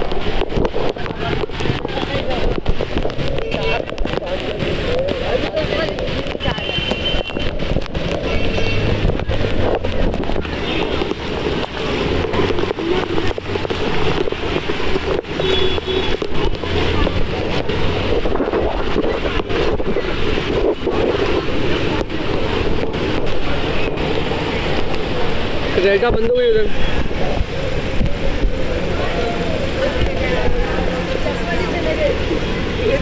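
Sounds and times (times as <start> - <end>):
heavy rain: 0.0 - 33.0
wind buffeting microphone: 0.0 - 33.0.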